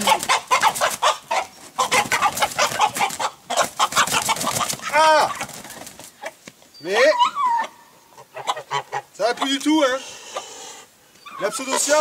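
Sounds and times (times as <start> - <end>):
hen squawking and clucking: 0.0 - 12.0.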